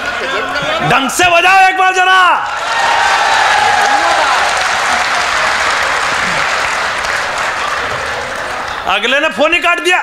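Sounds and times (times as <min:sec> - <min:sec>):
audience applauding: 0:02.4 - 0:09.4.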